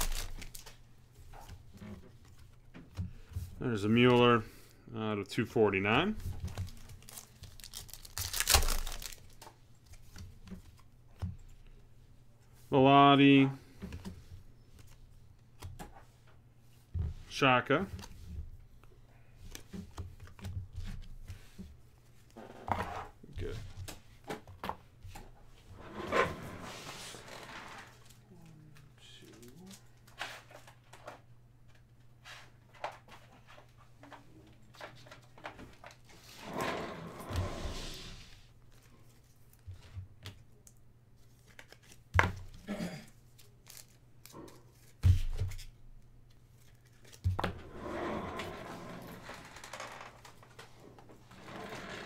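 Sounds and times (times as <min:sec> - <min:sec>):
low electrical hum: 0:00.0 - 0:51.9.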